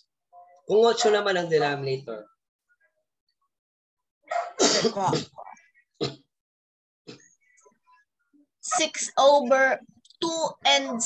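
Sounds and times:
person coughing harshly: 4.3 - 5.4.

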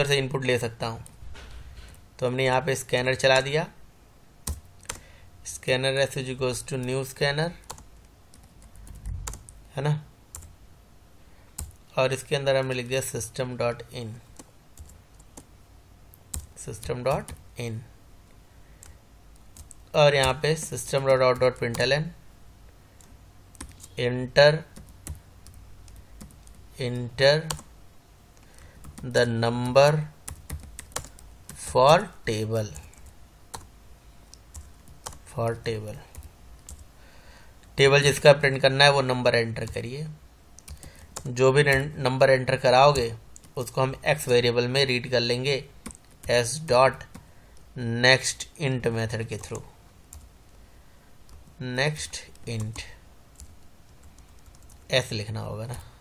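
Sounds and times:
computer keyboard typing: 4.4 - 5.0, 7.6 - 9.6, 10.3 - 10.5, 11.6 - 11.8, 14.3 - 15.5, 16.3 - 17.4, 18.8 - 21.9, 23.0 - 24.0, 24.7 - 27.7, 28.4 - 32.0, 32.7 - 33.7, 34.3 - 35.3, 36.1 - 36.9, 40.6 - 41.9, 45.8 - 46.4, 49.3 - 50.3, 51.3 - 54.9.

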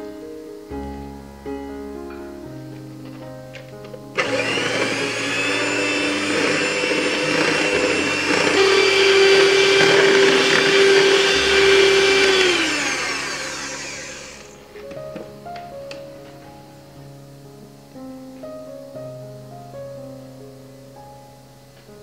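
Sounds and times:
electric hand mixer whine: 4.2 - 14.8.

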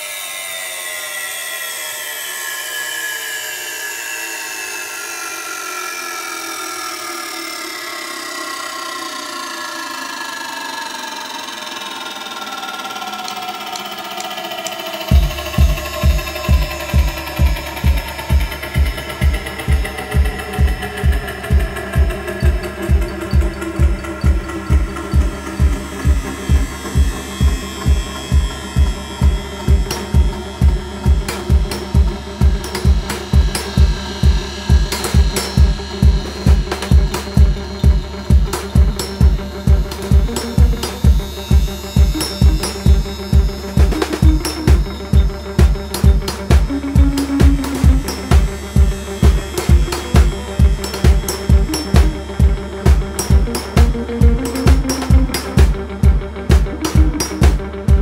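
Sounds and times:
gliding synthesizer tones: 1.9 - 58.0
steady kick drum: 15.1 - 58.0.

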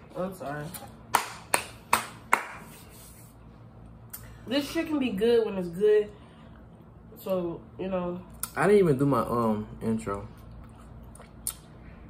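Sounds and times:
hand claps: 1.1 - 2.8.

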